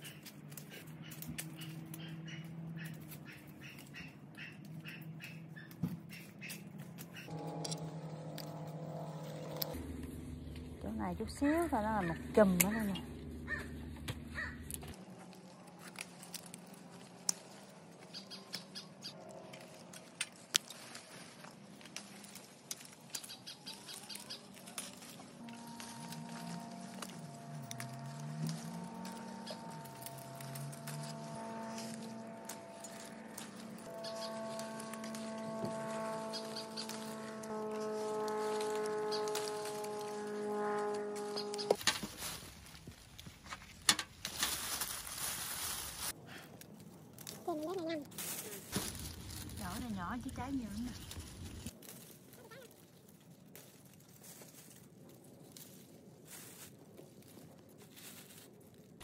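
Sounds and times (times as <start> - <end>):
pruning shears clicking: 0.0 - 4.1, 21.8 - 42.1
branches snapping: 0.0 - 9.9, 13.4 - 59.0
branches rustling: 0.0 - 59.0.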